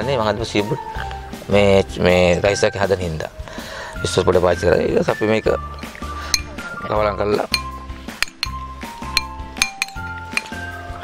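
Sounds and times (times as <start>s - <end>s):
background music with bass line: 0.0s - 11.0s
metal spoon clinking ceramic bowl: 5.8s - 6.6s, 7.5s - 10.7s.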